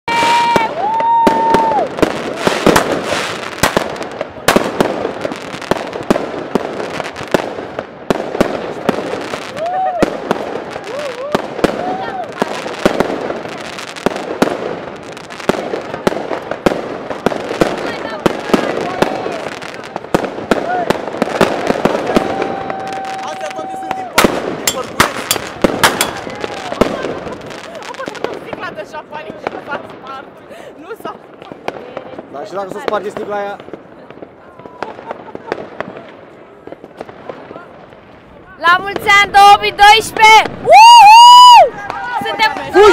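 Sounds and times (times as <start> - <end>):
fireworks bangs and crackles: 0.1 - 42.9.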